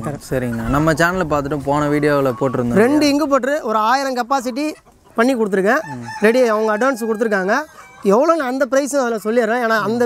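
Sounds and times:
rooster crowing: 5.7 - 8.2.

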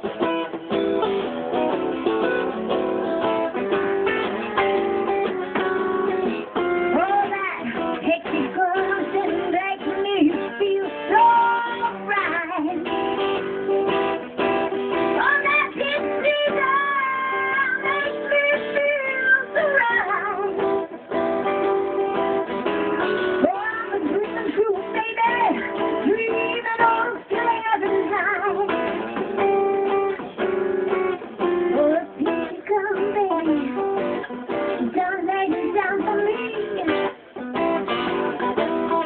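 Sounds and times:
strummed acoustic guitar: 0.0 - 39.0
woman singing into a microphone: 5.5 - 13.6, 14.9 - 22.3, 23.0 - 30.0, 31.4 - 37.4, 38.3 - 39.0.

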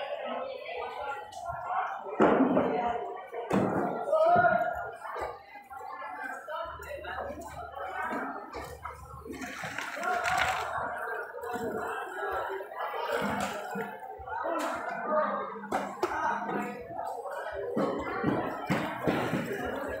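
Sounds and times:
muffled voices talking: 0.0 - 20.0.

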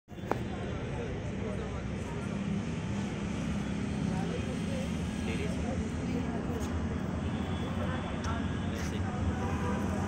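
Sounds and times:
faint voices: 0.1 - 10.0.

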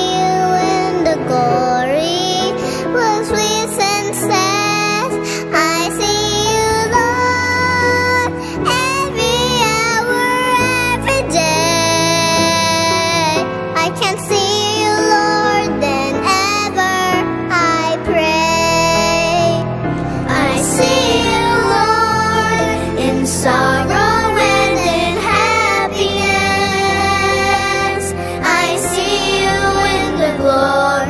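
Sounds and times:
children singing worship song: 0.0 - 31.0
instrumental backing track: 0.0 - 31.0.

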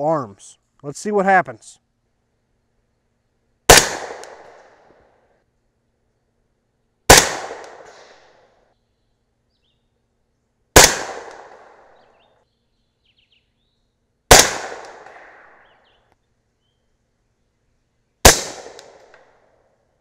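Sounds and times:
suppressed rifle shots: 3.7 - 5.0, 7.1 - 8.5, 10.8 - 12.2, 14.3 - 15.8, 18.2 - 19.4.

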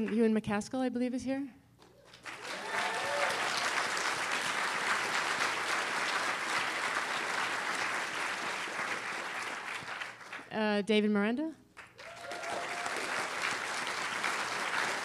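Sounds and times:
audience applauding: 2.0 - 10.5, 11.8 - 15.0.

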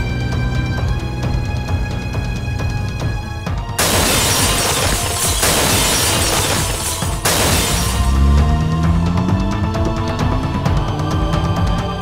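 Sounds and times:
dramatic music: 0.0 - 12.0
loud crash with shattering noise: 3.8 - 8.2.

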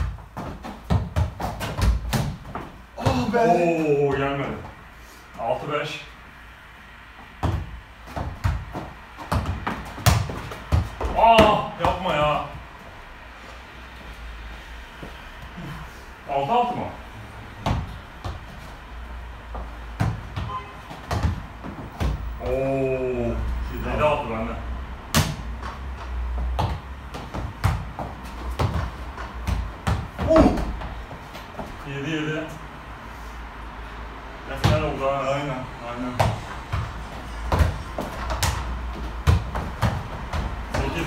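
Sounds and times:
football thudding on gym floor: 0.0 - 4.6, 7.4 - 12.4, 17.6 - 18.6, 19.5 - 22.5, 25.1 - 25.8, 26.4 - 31.8, 34.6 - 34.9, 36.2 - 41.0
shoe steps: 13.4 - 15.8, 25.2 - 31.8, 36.2 - 41.0.

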